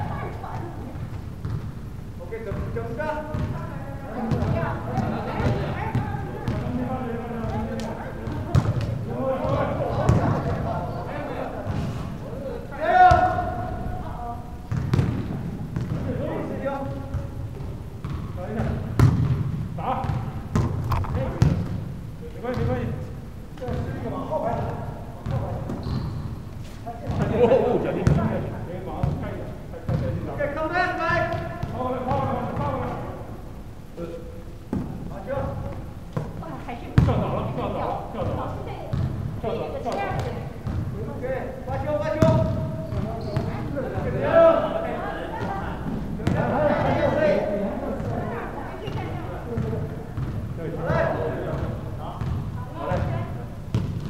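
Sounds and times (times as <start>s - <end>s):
people talking and calling out: 0.0s - 53.8s.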